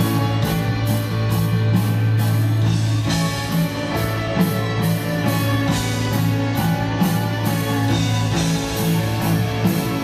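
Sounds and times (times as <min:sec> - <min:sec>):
drums and cymbals: 0:00.0 - 0:10.0
electric guitar: 0:00.0 - 0:10.0.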